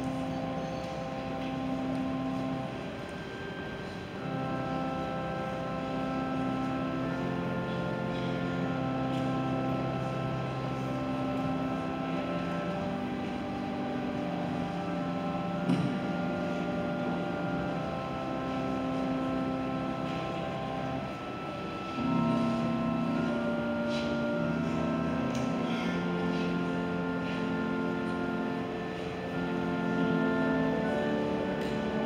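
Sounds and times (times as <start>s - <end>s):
church organ chords: 0.0s - 32.0s.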